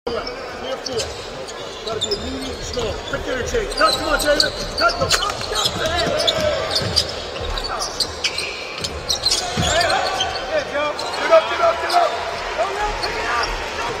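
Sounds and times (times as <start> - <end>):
sneakers squeaking: 0.1 - 14.0
players calling out: 0.2 - 14.0.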